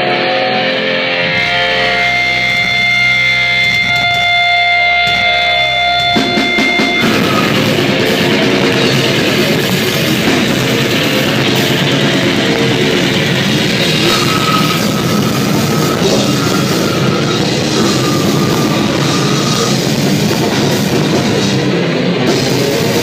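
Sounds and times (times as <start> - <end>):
ringing guitar notes: 0.0 - 21.6
death metal band playing live: 0.0 - 23.0
drums crashing: 1.3 - 23.0.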